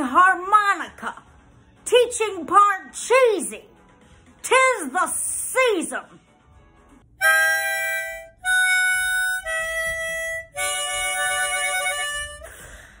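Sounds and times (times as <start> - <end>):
harmonica held chords: 7.1 - 13.0
breathy puff: 12.4 - 13.0.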